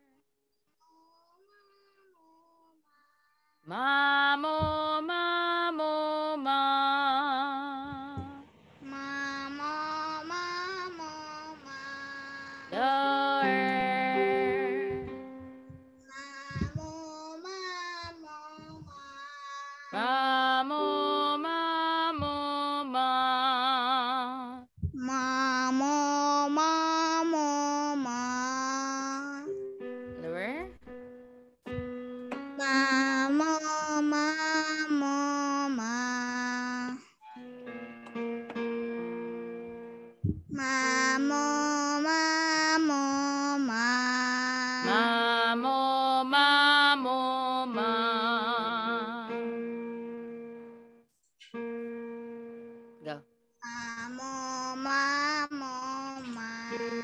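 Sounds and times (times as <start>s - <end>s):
child singing scales: 0.8s - 30.4s, 32.6s - 37.2s, 40.3s - 49.6s, 53.6s - 57.0s
woman singing scales: 3.7s - 16.8s, 19.9s - 30.9s, 32.6s - 37.0s, 40.4s - 50.8s, 51.6s - 57.0s.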